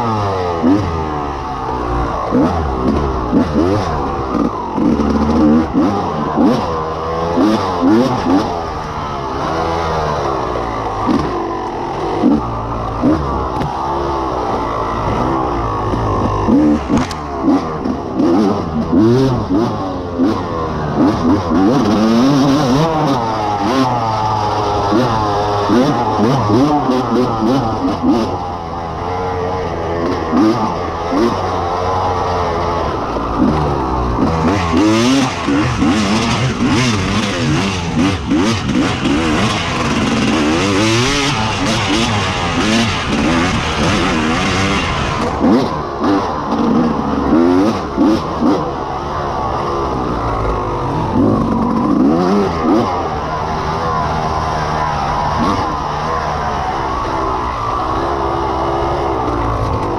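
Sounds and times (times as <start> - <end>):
dirt bike engine revving: 0.0 - 59.9.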